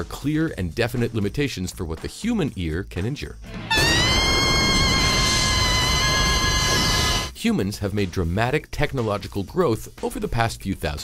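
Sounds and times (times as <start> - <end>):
high ringing tone: 3.7 - 7.3.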